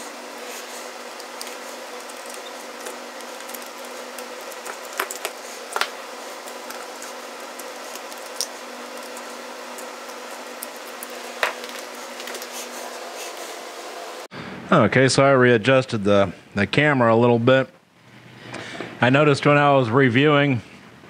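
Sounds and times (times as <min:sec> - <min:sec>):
steady background hum: 0:00.0 - 0:21.0.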